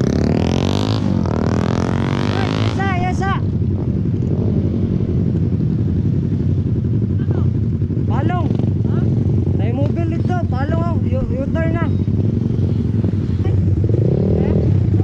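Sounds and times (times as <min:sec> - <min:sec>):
motorcycle running: 0:00.0 - 0:15.0.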